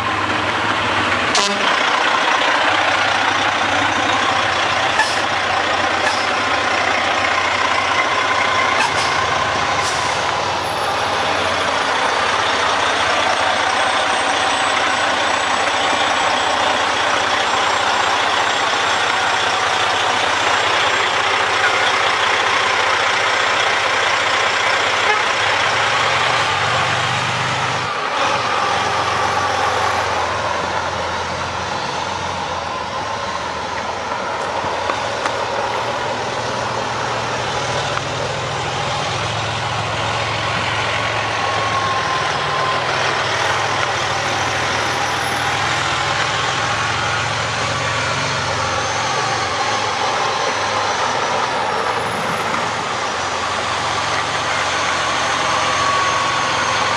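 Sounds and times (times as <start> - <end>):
diesel truck engine running: 0.0 - 56.9.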